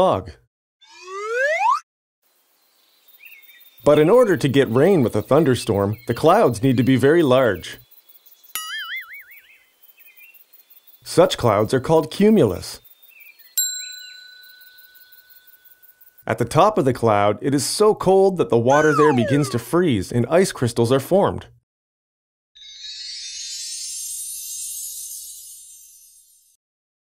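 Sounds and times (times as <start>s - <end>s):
narrator speaking: 0.0s - 0.4s, 3.8s - 7.8s, 11.1s - 12.8s, 16.3s - 21.6s
faint nature ambience: 2.2s - 21.0s
short bird chirp: 8.5s - 10.4s
bright chime ringing: 13.6s - 16.0s, 22.6s - 25.8s.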